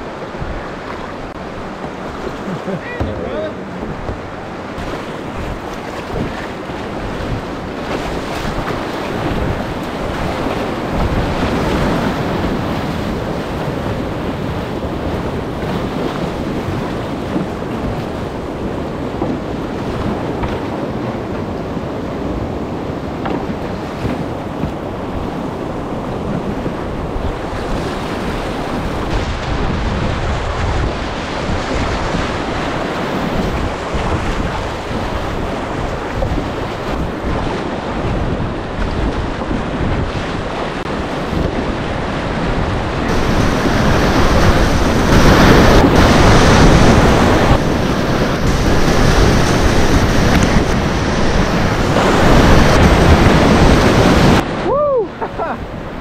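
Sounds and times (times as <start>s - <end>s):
whitewater rapids rushing: 0.0s - 15.7s, 40.3s - 56.0s
wind buffeting microphone: 0.0s - 56.0s.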